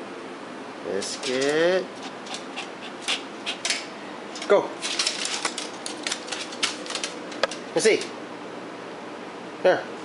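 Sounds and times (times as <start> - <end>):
dog claws clicking on wooden floor: 3.1 - 8.2.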